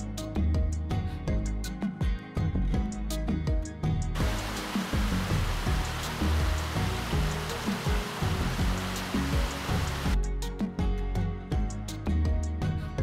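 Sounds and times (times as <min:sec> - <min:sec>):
background music: 0:00.0 - 0:13.0
river rushing over a weir: 0:04.2 - 0:10.2.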